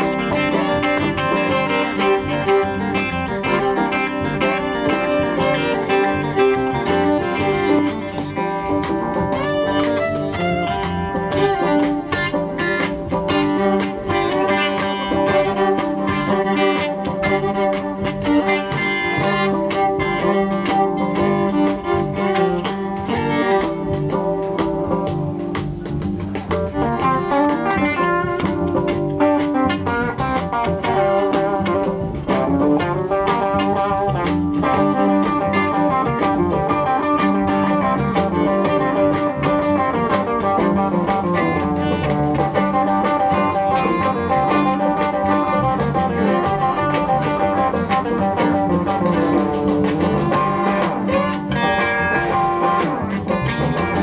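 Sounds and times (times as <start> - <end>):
bowed fiddle: 0.0 - 54.0
live blues band playing: 0.0 - 54.0.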